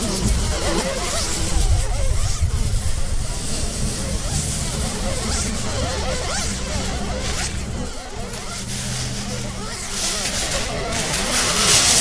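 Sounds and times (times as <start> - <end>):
babble of overlapping voices: 0.0 - 12.0
hiss: 0.0 - 12.0
low steady hum: 0.0 - 12.0.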